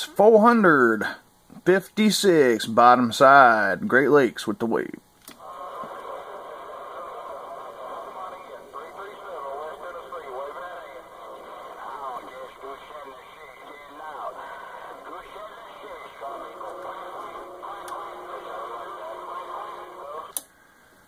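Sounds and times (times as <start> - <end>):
garbled radio voice: 5.4 - 20.4
radio static: 5.4 - 20.4.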